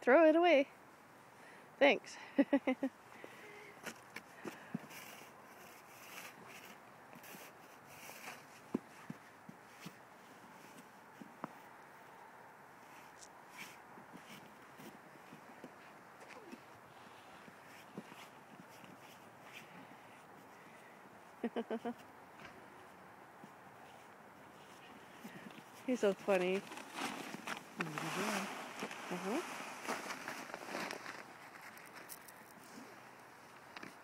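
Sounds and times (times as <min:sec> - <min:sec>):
crunches in packed snow: 0:24.5 - 0:33.1.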